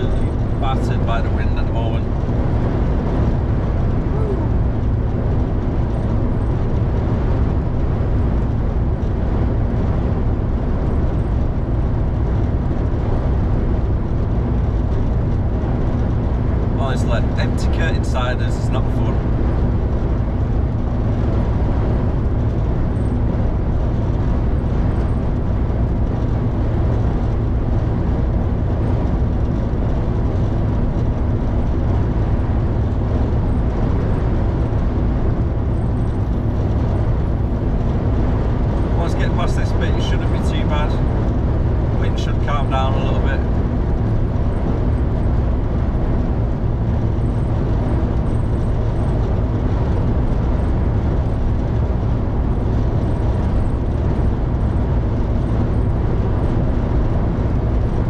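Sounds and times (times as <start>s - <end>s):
truck engine and road noise: 0.0s - 58.0s
wind buffeting truck: 0.0s - 58.0s.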